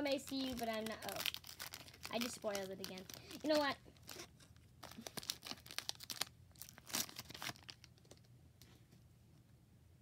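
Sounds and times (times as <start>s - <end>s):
foil wrapper tearing and crinkling: 0.0s - 8.2s.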